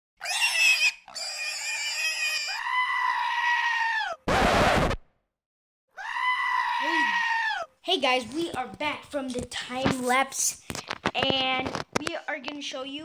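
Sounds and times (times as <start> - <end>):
harsh noise burst: 4.3 - 5.0.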